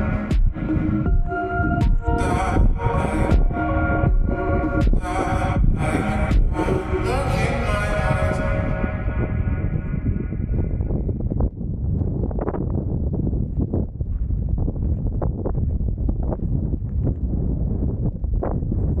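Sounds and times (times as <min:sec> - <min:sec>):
background music: 0:00.0 - 0:10.5
wind buffeting microphone: 0:00.0 - 0:19.0
footsteps on dry dirt path: 0:10.6 - 0:19.0.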